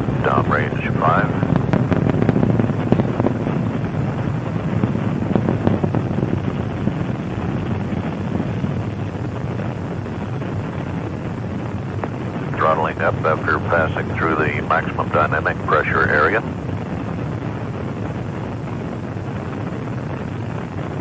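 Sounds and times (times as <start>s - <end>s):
rocket engines rumbling: 0.0s - 21.0s.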